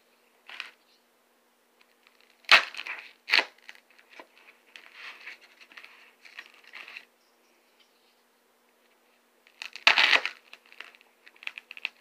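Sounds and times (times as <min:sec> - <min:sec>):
knife scraping foam: 0:09.6 - 0:10.9.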